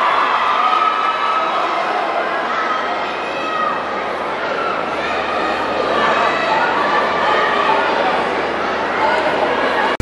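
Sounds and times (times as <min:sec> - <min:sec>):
crowd hubbub: 0:00.0 - 0:10.0.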